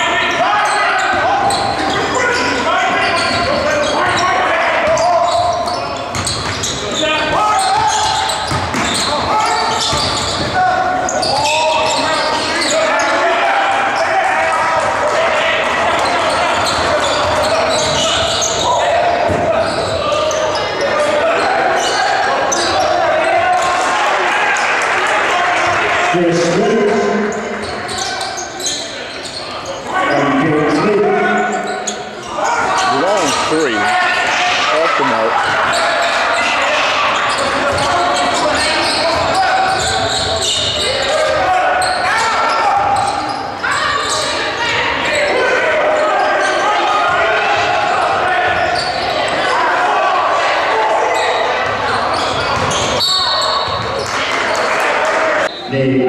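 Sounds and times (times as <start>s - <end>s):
overlapping voices in hall: 6.8s - 29.1s, 29.9s - 43.7s, 44.3s - 56.0s.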